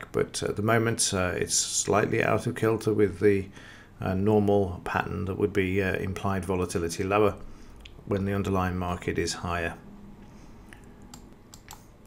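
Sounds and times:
low room noise: 0.0s - 12.0s
computer keys clicking: 10.8s - 11.9s.

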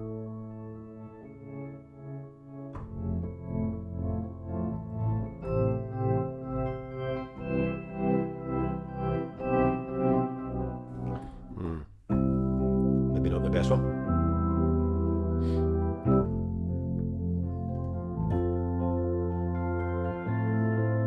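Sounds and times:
electric piano chordal melody: 0.0s - 21.0s.

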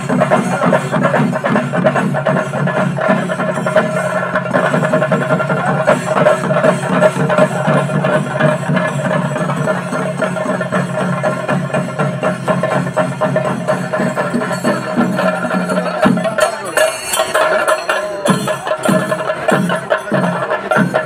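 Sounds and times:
drums playing fast beat: 0.0s - 21.0s.

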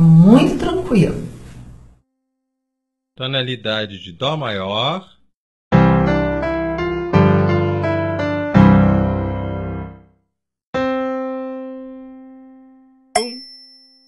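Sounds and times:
piano chords: 5.7s - 10.1s, 10.8s - 13.2s.

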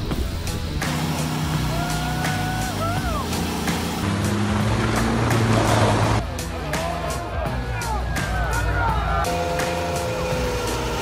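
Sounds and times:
background music with steady beat: 0.0s - 11.0s
car engine running hard: 0.2s - 6.4s, 9.0s - 11.0s.

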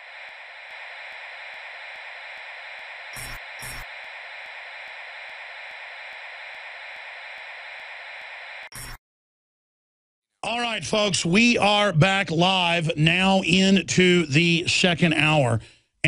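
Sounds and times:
bursts of crackling interference: 0.0s - 8.9s
radio static hiss: 0.0s - 9.0s.

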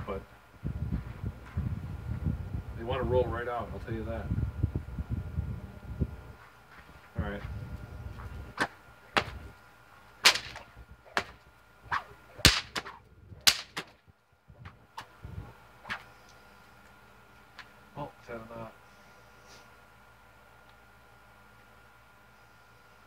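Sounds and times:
whip cracking: 8.6s - 9.4s, 10.2s - 14.0s.

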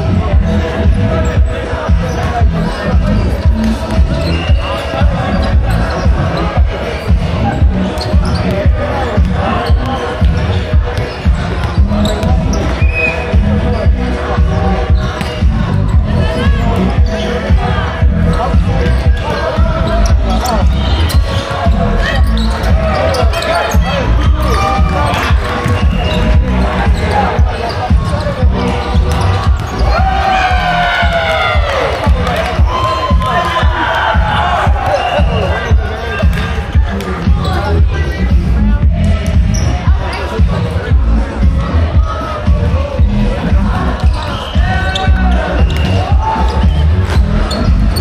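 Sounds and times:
background music: 0.0s - 48.0s
voices: 0.0s - 48.0s.

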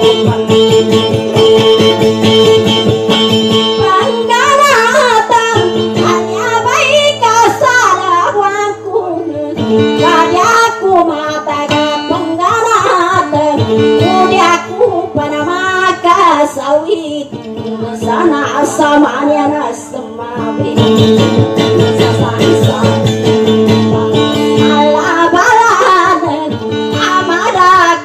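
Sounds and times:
acoustic guitar sustained notes: 0.0s - 28.0s
woman singing ornamented line: 3.5s - 28.0s.

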